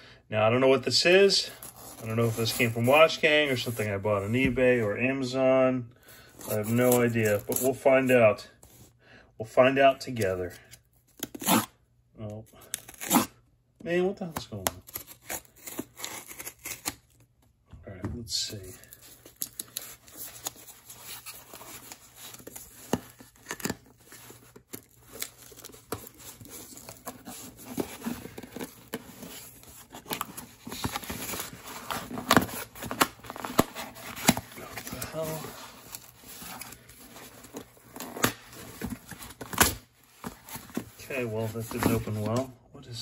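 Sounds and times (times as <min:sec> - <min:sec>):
cardboard box ripping: 0:14.9 - 0:17.0, 0:19.3 - 0:40.9.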